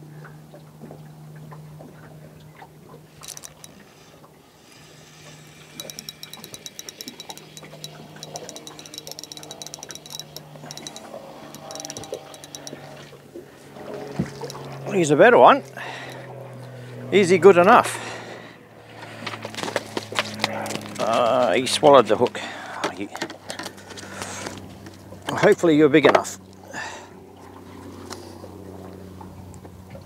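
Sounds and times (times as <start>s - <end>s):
fishing reel ticking: 3.2s - 3.8s, 5.5s - 12.9s, 14.4s - 15.1s
low hum: 5.8s - 13.0s.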